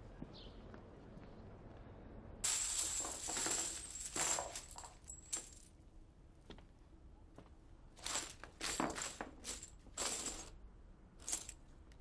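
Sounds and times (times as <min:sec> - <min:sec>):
coins clinking and jingling: 0:02.4 - 0:05.7, 0:08.0 - 0:10.5, 0:11.2 - 0:11.6.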